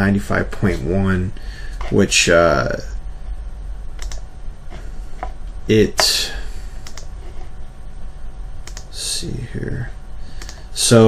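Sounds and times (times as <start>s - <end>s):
low steady hum: 0.0s - 11.0s
computer mouse clicks: 4.0s - 4.2s, 6.8s - 7.1s, 8.6s - 8.9s, 10.4s - 10.6s.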